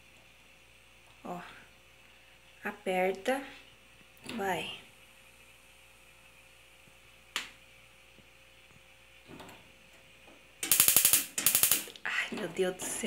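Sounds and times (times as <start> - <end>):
gas stove igniter clicking: 10.6 - 12.0.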